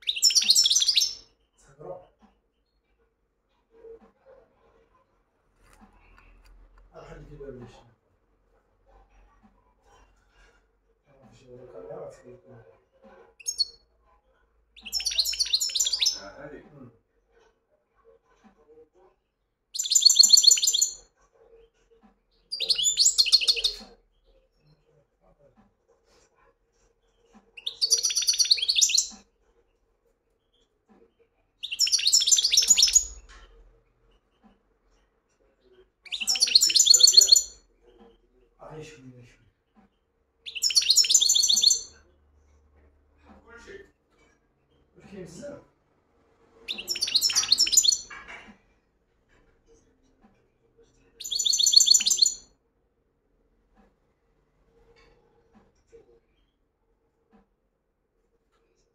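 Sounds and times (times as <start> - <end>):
finch twittering: 0.0 - 1.2, 14.8 - 16.2, 19.8 - 21.0, 22.5 - 23.9, 27.6 - 29.2, 31.6 - 33.3, 36.1 - 37.6, 40.5 - 41.9, 46.7 - 48.2, 51.2 - 52.4
goldfinch twittering trills: 46.7 - 48.0, 51.2 - 52.4.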